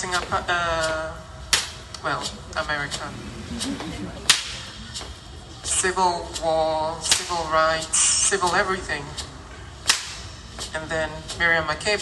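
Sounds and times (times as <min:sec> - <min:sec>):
sharp loud crack: 0:04.3 - 0:04.8, 0:09.8 - 0:10.3.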